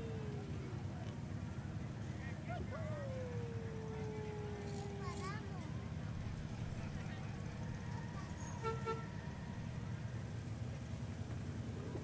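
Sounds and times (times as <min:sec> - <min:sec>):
miniature train horn toots: 0:08.4 - 0:09.2.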